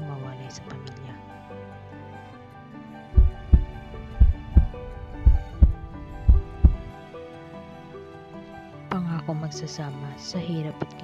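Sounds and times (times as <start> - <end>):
soft background music: 0.0 - 11.0
heartbeat thumps: 3.2 - 6.9.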